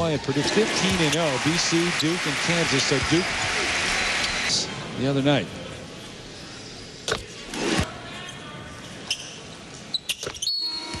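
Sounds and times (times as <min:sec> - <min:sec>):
arena crowd noise: 0:00.0 - 0:09.9.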